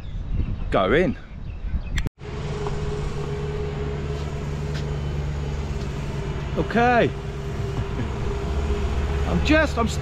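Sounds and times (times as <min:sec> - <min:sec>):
vehicle engine humming: 0:02.2 - 0:10.0.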